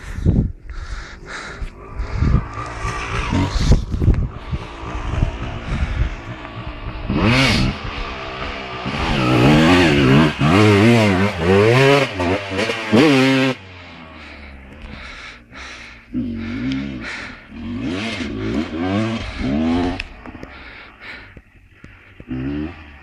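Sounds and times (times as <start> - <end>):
low rumbling: 0.0 - 23.0
motocross bike engine revving: 1.3 - 23.0.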